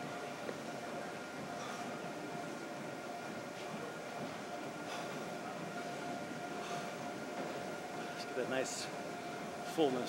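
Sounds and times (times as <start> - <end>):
gym room hum with tones: 0.0 - 10.0.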